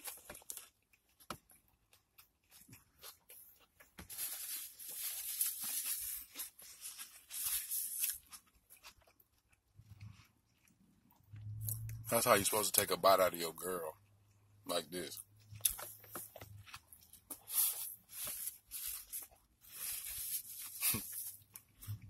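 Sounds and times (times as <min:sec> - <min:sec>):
chewing and lip smacks: 0:08.0 - 0:12.1.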